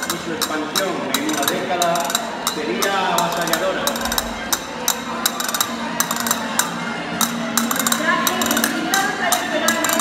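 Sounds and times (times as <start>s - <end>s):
clicking percussion: 0.0s - 10.0s.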